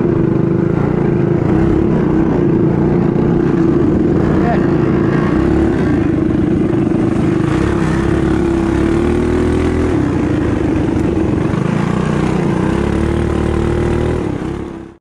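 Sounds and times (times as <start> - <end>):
mini bike engine racing: 0.0 - 15.0.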